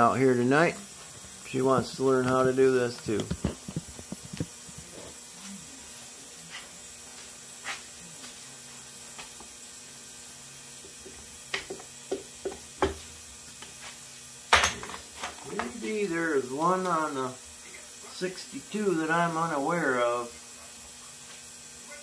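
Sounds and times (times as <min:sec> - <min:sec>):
steady hiss: 0:00.0 - 0:22.0.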